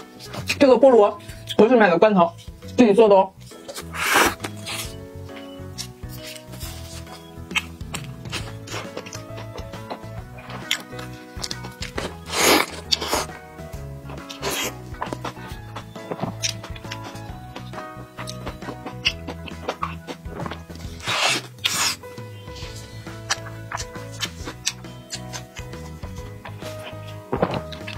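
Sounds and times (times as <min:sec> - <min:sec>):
background music with held notes: 0:00.0 - 0:27.9
biting into a soft burger: 0:03.6 - 0:05.0, 0:05.8 - 0:13.4, 0:14.1 - 0:22.0.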